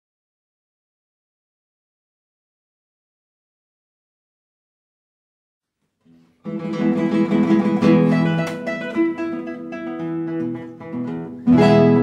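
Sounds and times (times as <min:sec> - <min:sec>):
classical guitars playing: 0:06.1 - 0:12.0.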